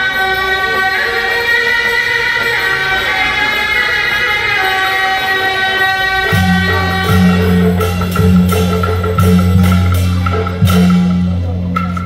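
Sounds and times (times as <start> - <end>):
shawms holding reedy notes: 0.0 - 12.0.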